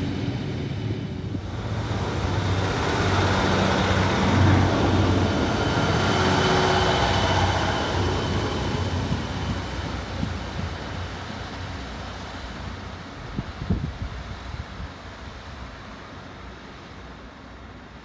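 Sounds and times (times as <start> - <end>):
diesel train engine drone: 0.0 - 18.0
rail and wheel rumble: 0.0 - 18.0.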